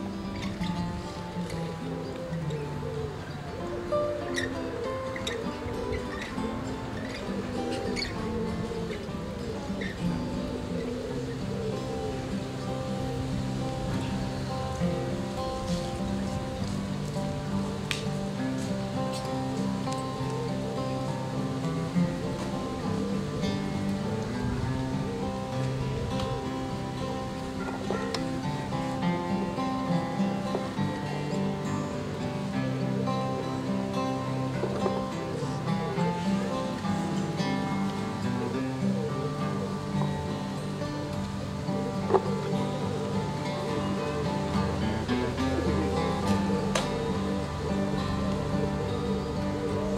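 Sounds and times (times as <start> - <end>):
acoustic guitars playing a jig: 0.0 - 49.9.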